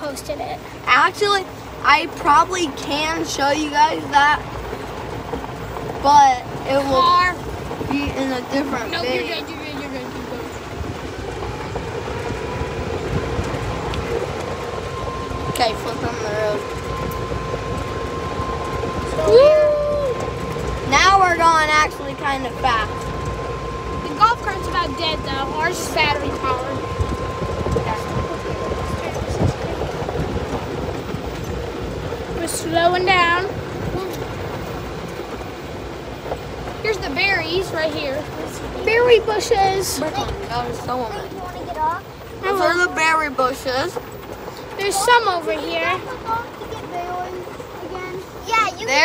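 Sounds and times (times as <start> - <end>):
golf cart tyres rumbling: 0.0 - 49.0
electric motor whine: 6.6 - 41.5.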